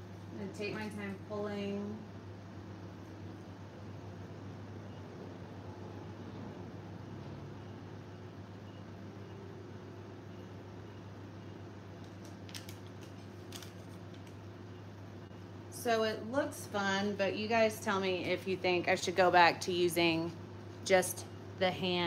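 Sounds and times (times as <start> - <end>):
low hum and hiss: 0.0 - 22.0.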